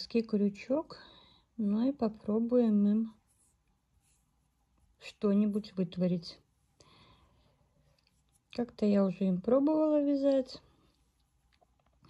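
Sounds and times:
faint rustles of handling yarn: 0:00.0 - 0:12.0
person speaking: 0:01.6 - 0:04.2, 0:04.9 - 0:06.5, 0:08.1 - 0:10.7.

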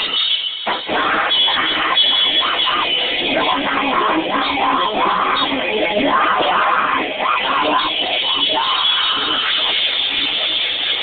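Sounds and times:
drums and cymbals: 0:00.0 - 0:03.6
distorted grind band playing: 0:00.0 - 0:11.0
distorted guitar: 0:00.0 - 0:11.0.

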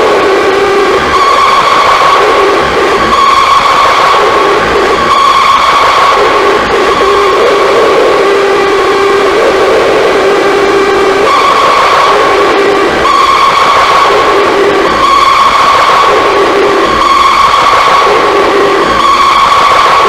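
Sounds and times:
distorted hiss noise: 0:00.0 - 0:20.0
high droning feedback tone: 0:00.0 - 0:20.0
low droning feedback tone: 0:00.0 - 0:20.0.

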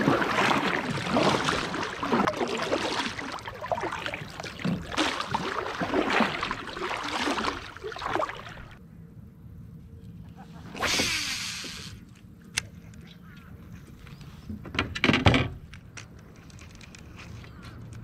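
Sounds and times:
paddle strokes splashing in water: 0:00.0 - 0:08.8.

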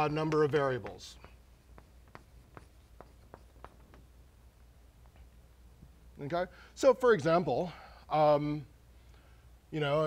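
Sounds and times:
chalk tapping on blackboard: 0:00.0 - 0:04.2.

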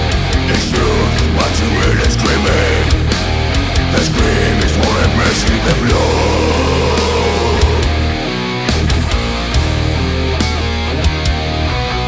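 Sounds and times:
distorted electric guitar and bass: 0:00.0 - 0:12.0
drums: 0:00.0 - 0:12.0.

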